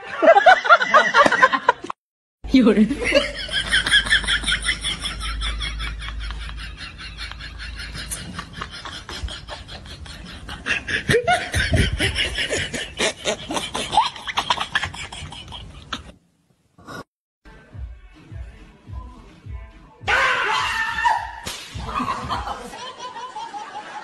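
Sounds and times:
people laughing: 0.0s - 2.0s, 2.9s - 16.1s, 21.8s - 24.0s.

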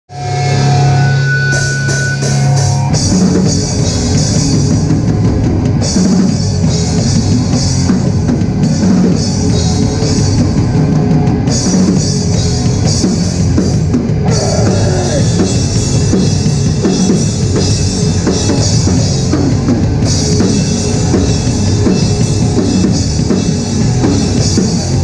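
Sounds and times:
hardcore band playing live: 0.1s - 25.0s.

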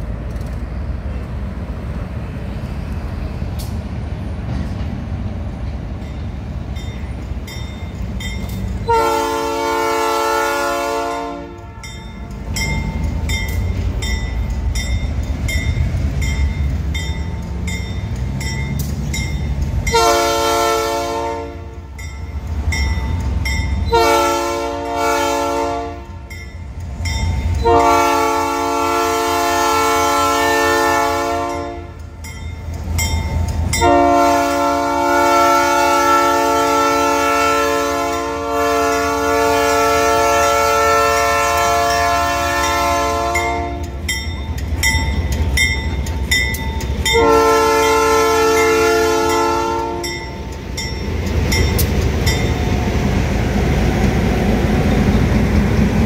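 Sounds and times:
locomotive air horn blasts: 8.8s - 12.0s, 19.9s - 21.9s, 23.9s - 26.3s, 27.6s - 32.0s, 33.8s - 44.0s, 47.1s - 50.2s.

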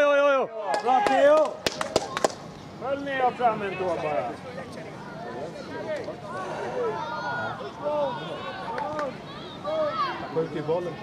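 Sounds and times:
young children talking and calling: 2.0s - 11.0s.

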